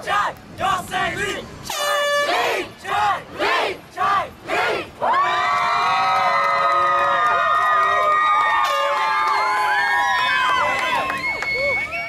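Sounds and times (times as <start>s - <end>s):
horn honking: 1.7s - 2.6s
crowd chanting: 2.2s - 5.3s
crowd cheering: 4.6s - 12.0s.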